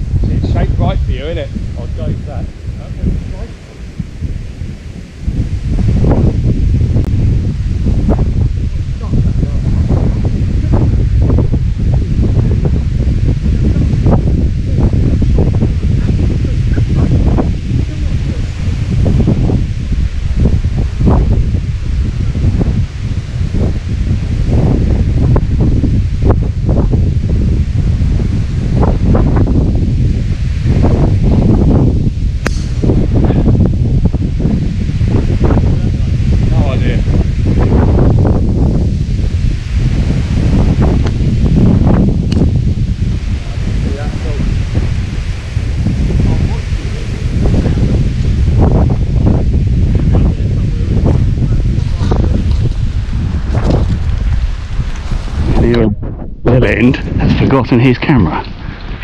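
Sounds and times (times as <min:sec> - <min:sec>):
wind buffeting microphone: 0:00.0 - 0:59.0
golf club striking ball: 0:32.4 - 0:33.0.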